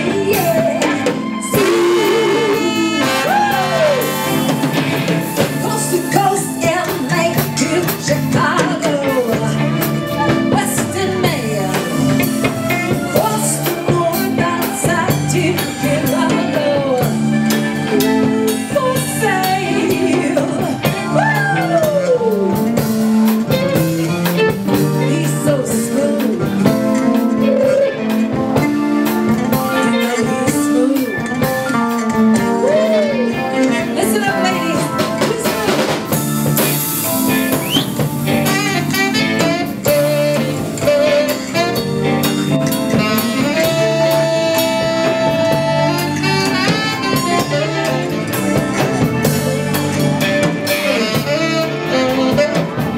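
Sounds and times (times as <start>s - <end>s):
woman singing: 0.0s - 4.7s, 5.3s - 23.0s, 24.7s - 36.7s, 38.4s - 41.9s, 42.9s - 48.3s
live band with guitar and drums: 0.0s - 52.9s
saxophone melody: 0.0s - 52.9s.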